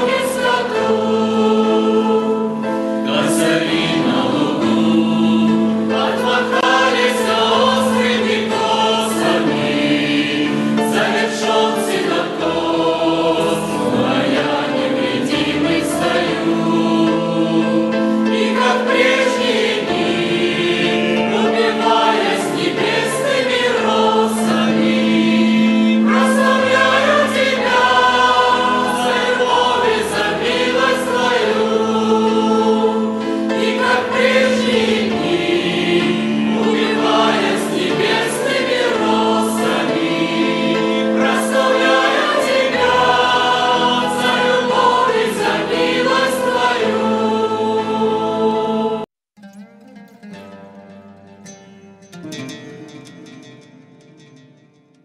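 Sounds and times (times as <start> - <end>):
group singing a hymn: 0.0 - 49.1
held accompaniment chords: 0.0 - 55.0.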